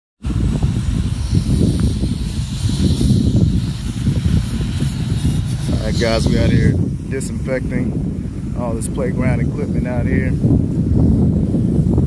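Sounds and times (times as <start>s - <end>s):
pressure washer water jet hissing: 0.2s - 12.0s
man talking: 5.7s - 10.4s.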